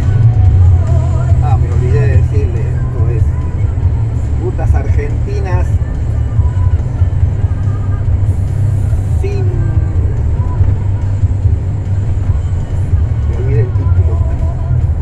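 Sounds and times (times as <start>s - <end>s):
truck engine and road noise: 0.0s - 15.0s
person speaking: 1.4s - 3.4s, 8.9s - 9.9s, 13.2s - 14.3s.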